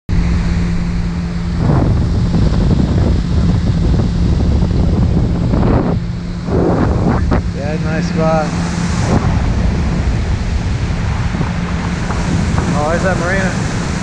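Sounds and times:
outboard motor hum: 0:00.1 - 0:14.0
water rushing past hull: 0:00.1 - 0:14.0
wind buffeting microphone: 0:00.1 - 0:14.0.

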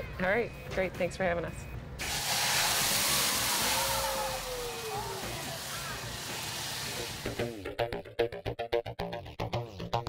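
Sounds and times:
whoosh and hiss of flames: 0:02.0 - 0:07.5.

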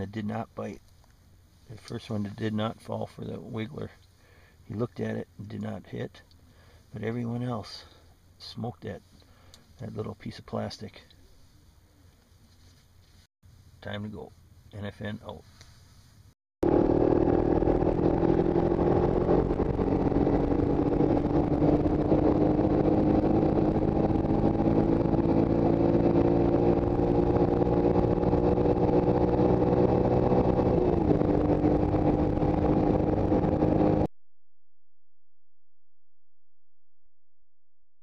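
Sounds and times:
all-terrain vehicle engine running: 0:16.6 - 0:34.1.

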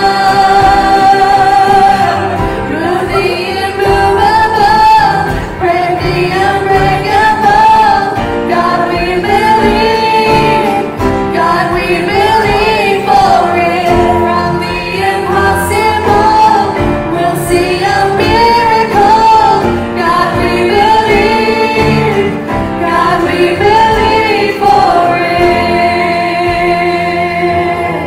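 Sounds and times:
group singing gospel song: 0:00.0 - 0:28.0
live band playing: 0:00.0 - 0:28.0.

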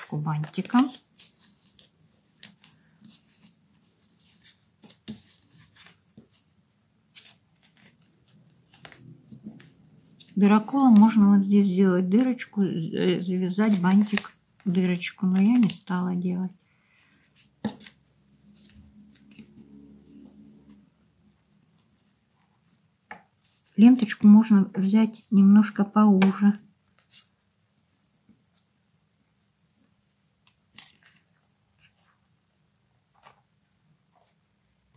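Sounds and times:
ribbon rustling against card: 0:00.0 - 0:11.5, 0:13.3 - 0:16.0.

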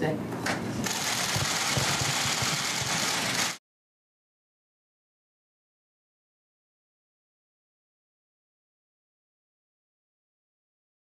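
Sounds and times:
camera shutters clattering: 0:00.8 - 0:03.6.

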